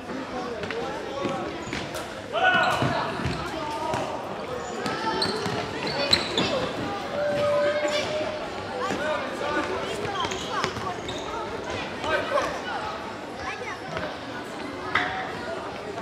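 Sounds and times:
players and spectators shouting: 6.5 - 9.8.

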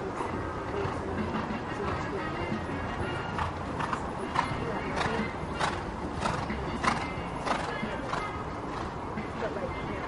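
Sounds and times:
horse cantering on grass: 3.2 - 8.9.

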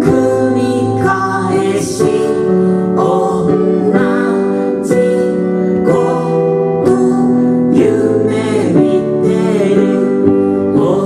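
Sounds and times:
electric guitar chords: 0.0 - 11.0
electric keyboard chords: 0.0 - 11.0.

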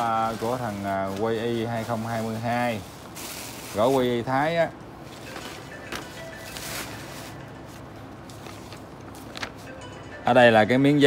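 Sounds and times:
paper rustling and crackling: 0.0 - 4.4, 5.3 - 9.7
faint background music: 3.7 - 11.0.

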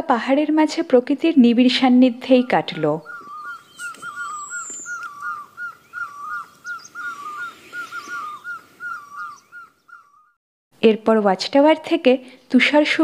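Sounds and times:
bird whistling short notes: 3.1 - 9.4.

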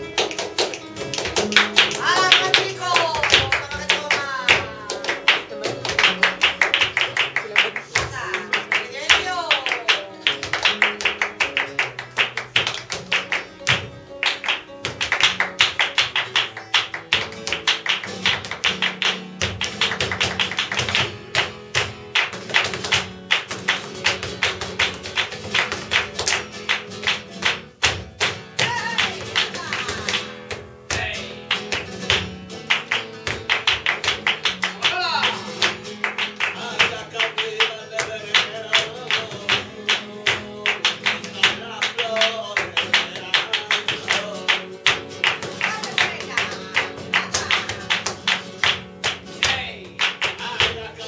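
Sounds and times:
hand clapping: 0.0 - 51.0
strummed guitar: 0.0 - 51.0.

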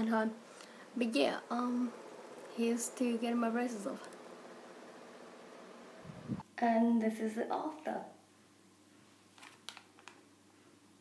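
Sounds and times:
low steady hum: 0.0 - 9.0.

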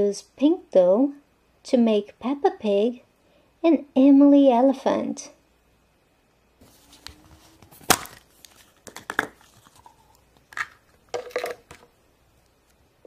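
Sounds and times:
crinkling rustles: 6.6 - 12.8.

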